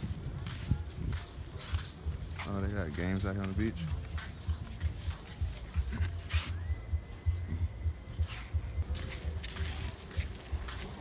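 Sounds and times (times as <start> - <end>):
wind buffeting microphone: 0.0 - 6.1
scuffing sounds: 0.0 - 11.0
faint high whistle: 6.2 - 8.8.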